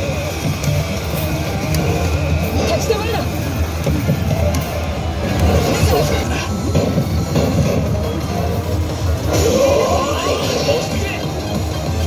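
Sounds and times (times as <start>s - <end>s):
slot machine music: 0.0s - 12.0s.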